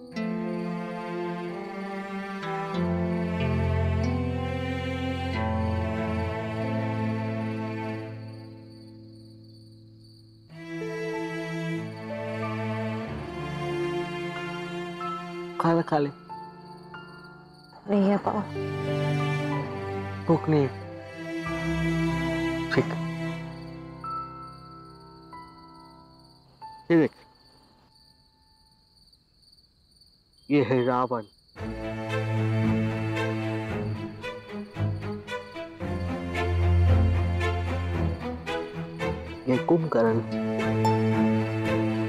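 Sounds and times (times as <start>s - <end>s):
low string notes: 0.0s - 8.7s, 18.1s - 24.6s, 31.6s - 42.0s
crickets chirping: 0.0s - 42.0s
person speaking: 30.5s - 31.3s, 39.4s - 40.5s.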